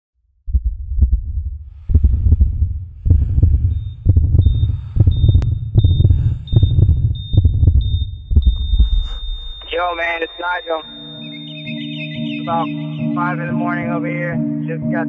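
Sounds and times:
heartbeat thumps: 0:00.4 - 0:13.1
high electronic tone blips: 0:07.5 - 0:13.8.

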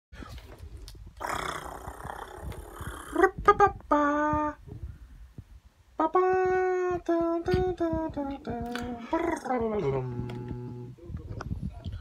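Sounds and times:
man making rough drawn-out noise: 0:08.6 - 0:11.2.

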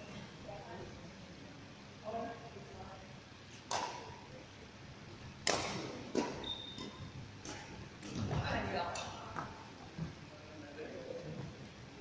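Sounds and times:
racket striking shuttlecock: 0:03.7 - 0:04.1, 0:05.4 - 0:08.2.

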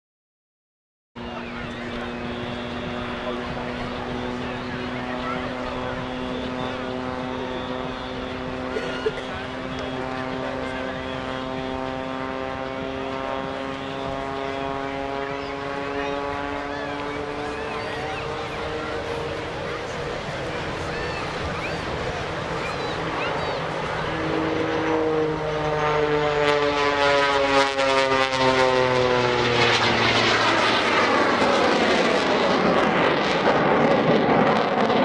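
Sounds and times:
biplane engine and propeller drone: 0:01.2 - 0:35.0.

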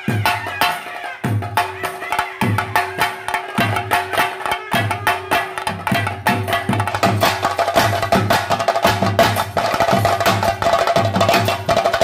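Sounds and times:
drums playing fast rhythm: 0:00.0 - 0:12.0.

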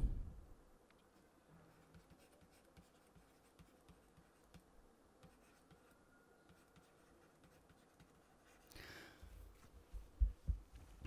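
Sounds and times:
stylus scratching on tablet: 0:01.1 - 0:08.7.

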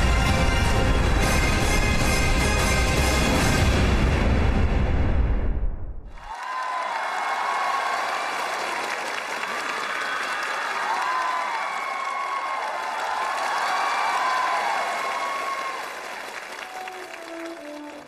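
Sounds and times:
audience applauding and cheering: 0:06.1 - 0:18.0
high shouts: 0:06.2 - 0:08.8, 0:09.5 - 0:16.1.

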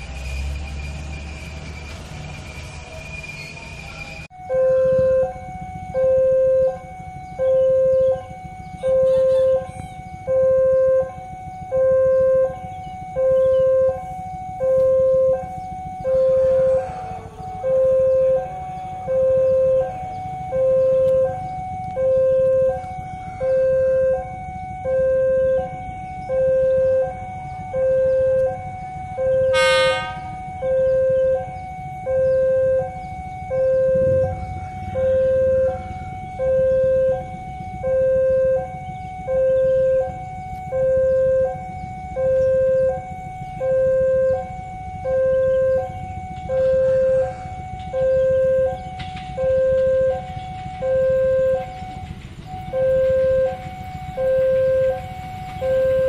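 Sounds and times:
level crossing two-tone alarm: 0:03.4 - 0:56.0.

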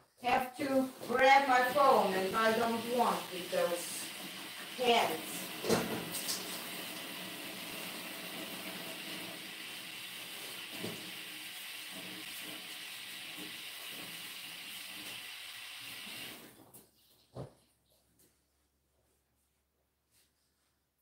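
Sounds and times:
tap water running into sink: 0:01.0 - 0:16.6.

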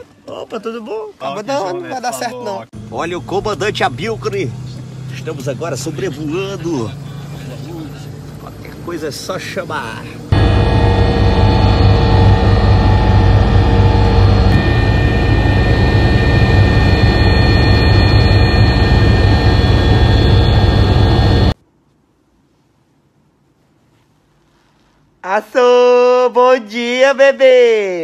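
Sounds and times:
steady whining tones: 0:02.8 - 0:21.6
jet engine rumble in cabin: 0:10.3 - 0:21.6.

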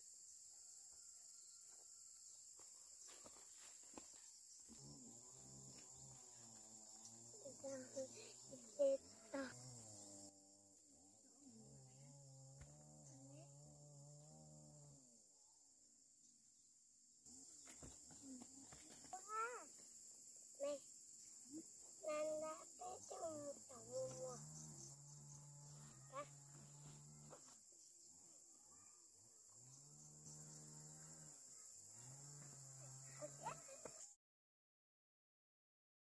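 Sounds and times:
children's high-pitched voices: 0:07.4 - 0:09.6, 0:18.9 - 0:19.7, 0:20.6 - 0:20.8, 0:21.5 - 0:24.4, 0:33.0 - 0:34.0.

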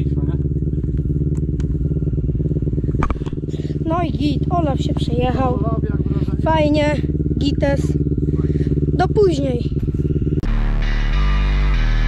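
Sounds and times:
off-road vehicle engine idling: 0:00.0 - 0:12.0.

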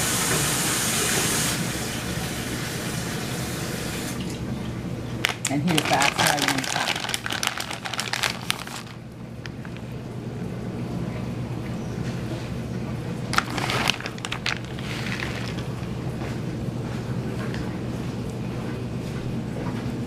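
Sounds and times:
crinkling rustling handling noise: 0:05.2 - 0:10.0, 0:13.3 - 0:16.4.

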